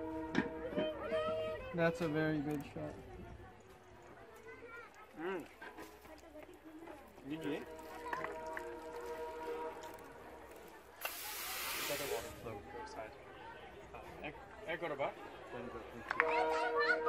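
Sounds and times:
loud sharp hiss: 11.0 - 12.5.

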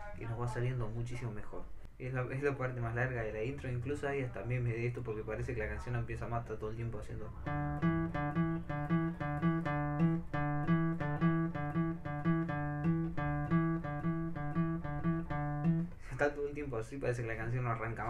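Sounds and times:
classical guitar riff: 7.3 - 16.1.

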